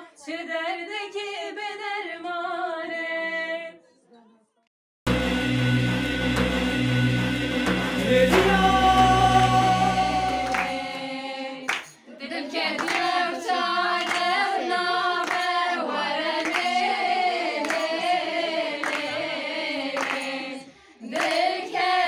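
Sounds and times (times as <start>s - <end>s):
women singing in unison: 0.0s - 3.8s, 8.0s - 22.0s
low bass drone: 5.1s - 11.0s
synthesized intro music: 5.1s - 11.5s
hand claps: 10.4s - 10.8s, 11.7s - 12.0s, 12.8s - 13.2s, 14.0s - 14.4s, 15.2s - 15.6s, 16.4s - 16.8s, 17.6s - 18.1s, 18.8s - 19.2s, 20.0s - 20.4s, 21.1s - 21.5s.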